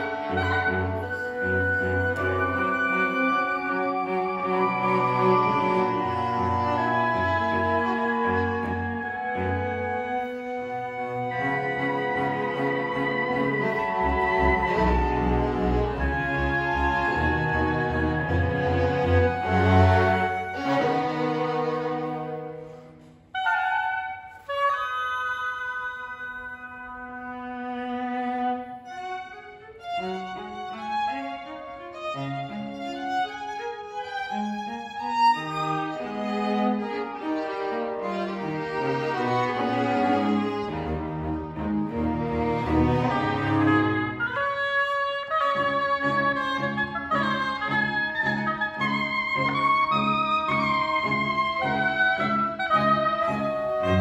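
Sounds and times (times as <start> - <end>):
chamber ensemble playing chords: 0.0 - 23.0, 35.8 - 44.3, 45.6 - 54.0
held oboe tones: 0.0 - 31.2, 42.7 - 54.0.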